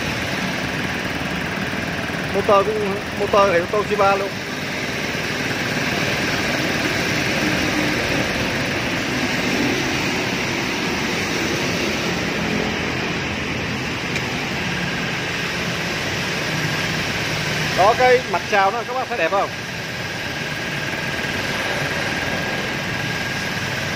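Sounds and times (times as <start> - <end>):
air compressor running: 0.0 - 23.9.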